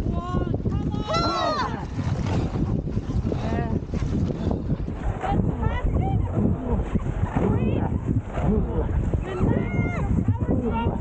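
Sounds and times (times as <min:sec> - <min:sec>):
paddles splashing through water: 0:00.0 - 0:11.0
wind rumble on microphone: 0:00.0 - 0:11.0.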